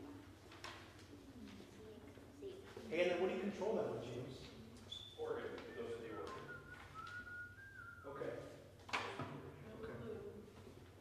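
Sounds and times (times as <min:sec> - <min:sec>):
person whistling softly: 0:05.0 - 0:08.2.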